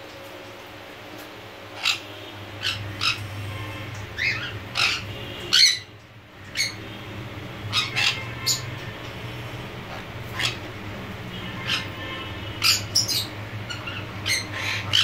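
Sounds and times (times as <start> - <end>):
parrots squawking: 1.7 - 8.9, 9.7 - 15.0.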